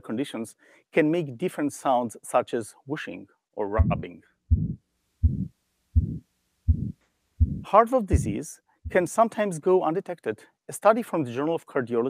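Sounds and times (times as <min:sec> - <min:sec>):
heartbeat with murmur: 0:03.8 - 0:09.1.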